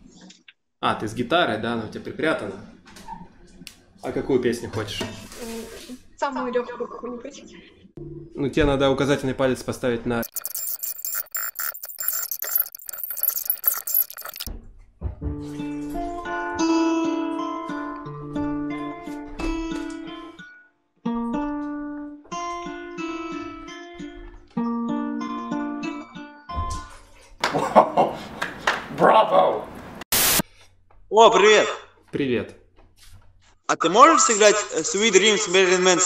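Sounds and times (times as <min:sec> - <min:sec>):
clapping: 0:27.4 - 0:27.6, 0:28.3 - 0:29.0
high hissing noise: 0:30.1 - 0:30.4.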